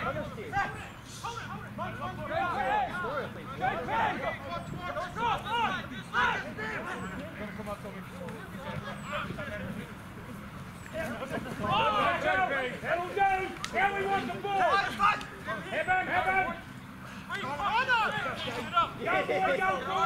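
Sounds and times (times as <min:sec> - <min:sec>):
players shouting calls: 0:00.0 - 0:20.0.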